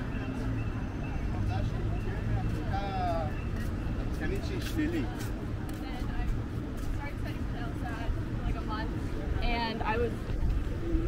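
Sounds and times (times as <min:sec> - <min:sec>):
low rumble of road traffic: 0:00.0 - 0:11.0
people chatting: 0:04.2 - 0:11.0.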